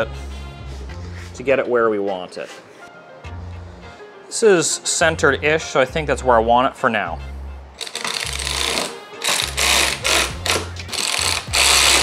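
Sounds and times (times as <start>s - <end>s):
cordless electric ratchet running: 7.8s - 12.0s.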